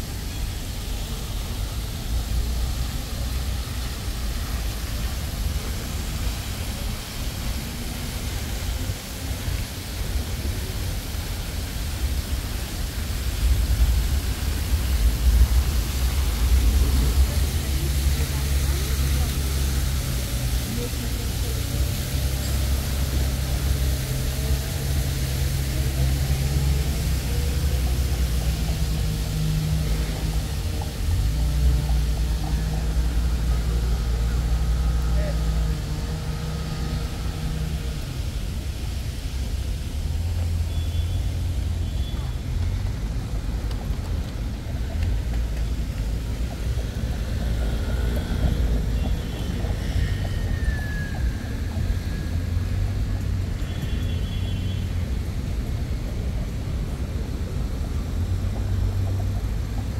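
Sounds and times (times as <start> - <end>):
people talking: 0.0 - 59.9
traffic and machinery drone: 0.0 - 59.9.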